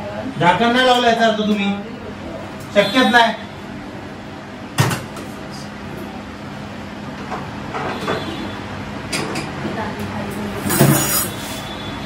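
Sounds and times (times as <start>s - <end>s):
harsh scrape: 10.7s - 11.7s.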